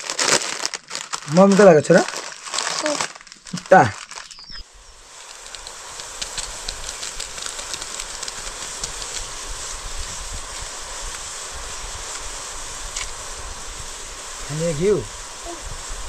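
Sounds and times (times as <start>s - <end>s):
water boiling with bubbling hiss: 0.0s - 16.0s
wood fire crackling: 0.0s - 16.0s.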